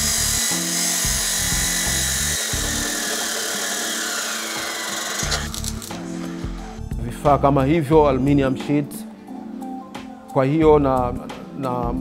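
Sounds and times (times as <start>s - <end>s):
background music with bass line: 0.0s - 3.0s, 5.2s - 12.0s
arc welding crackle: 0.0s - 6.0s
cutoff saw grinding steel: 0.0s - 6.0s.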